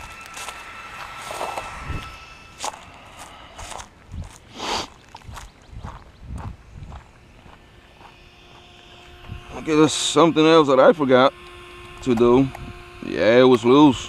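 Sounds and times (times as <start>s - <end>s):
footsteps crunching on leaves and gravel: 0.0s - 10.2s.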